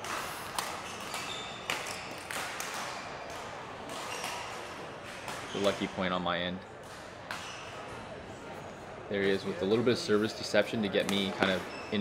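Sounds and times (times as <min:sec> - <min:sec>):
indoor hall background noise: 0:00.0 - 0:12.0.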